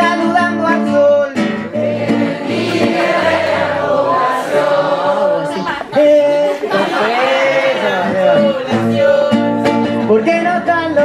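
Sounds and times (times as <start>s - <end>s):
man singing: 0.0s - 2.1s, 5.0s - 11.0s
strummed acoustic guitar: 0.0s - 11.0s
audience singing along: 1.7s - 9.8s.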